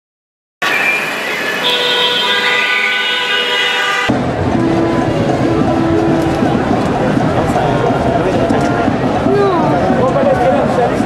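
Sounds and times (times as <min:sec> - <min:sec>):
vehicle horns sounding: 0:00.6 - 0:06.8.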